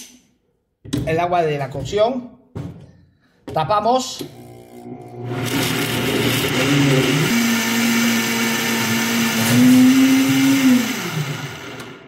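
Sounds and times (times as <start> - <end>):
blender running at high speed: 4.3 - 12.0.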